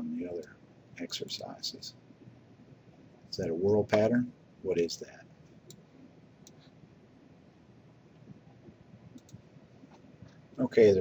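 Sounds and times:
faint clicks: 0:05.6 - 0:06.7, 0:08.2 - 0:10.4.

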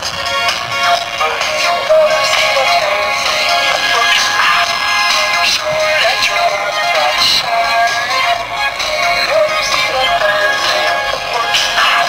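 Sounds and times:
tinny pop song over loudspeaker: 0:00.0 - 0:12.0.

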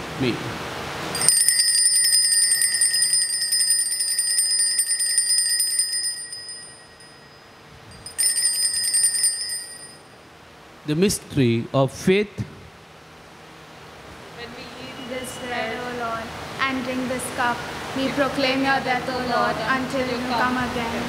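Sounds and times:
small bells jingling: 0:01.1 - 0:10.1.

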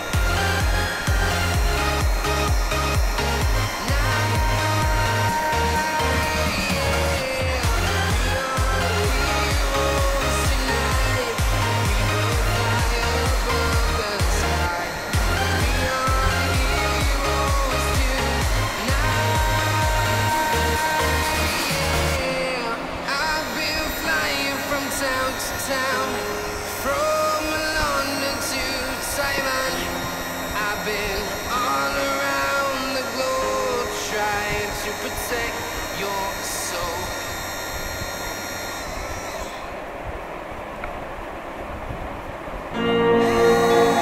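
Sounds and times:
pop music with beat: 0:00.0 - 0:38.2, 0:42.8 - 0:44.0
electric motor whirring: 0:00.0 - 0:41.3, 0:42.8 - 0:44.0.

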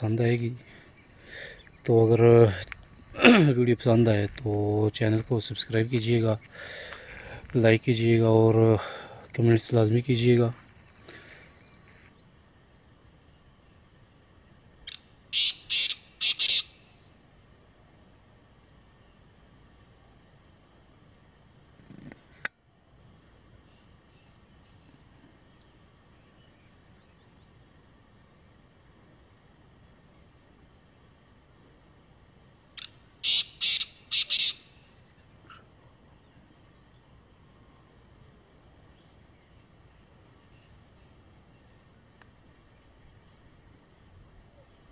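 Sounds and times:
francolin calling: 0:14.8 - 0:17.2, 0:32.7 - 0:37.1, 0:38.8 - 0:41.8
francolin calling harsh notes: 0:14.9 - 0:16.8, 0:32.8 - 0:34.9.

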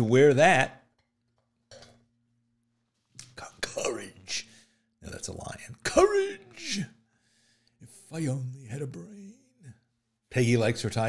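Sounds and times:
man speaking softly: 0:03.2 - 0:04.4, 0:07.8 - 0:09.8.

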